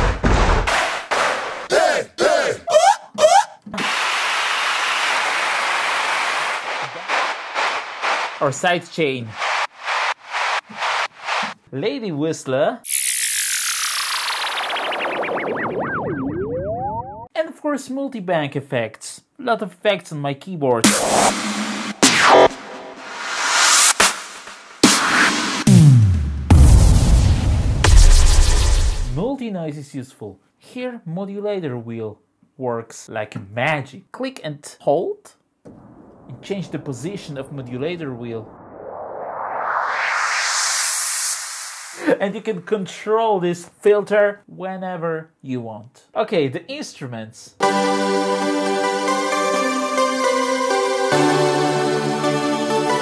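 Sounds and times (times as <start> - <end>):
synth noise sweep rising in pitch: 5.8 - 8.5, 9.3 - 11.6, 12.9 - 17.3, 38.4 - 42.0
synthesizer whistle-like warble: 12.9 - 17.3.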